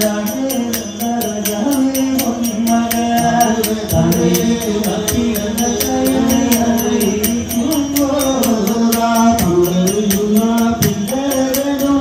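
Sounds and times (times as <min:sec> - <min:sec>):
small hand cymbals: 0:00.0 - 0:12.0
voices chanting devotional melody: 0:00.0 - 0:12.0.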